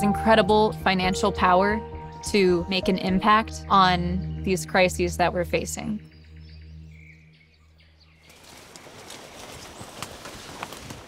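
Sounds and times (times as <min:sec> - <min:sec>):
soft music pad: 0:00.0 - 0:08.2
small clicks and rustles: 0:08.3 - 0:11.0.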